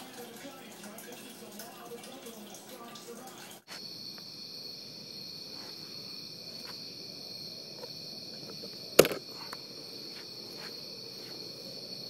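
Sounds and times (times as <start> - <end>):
insects trilling: 0.1 - 12.0.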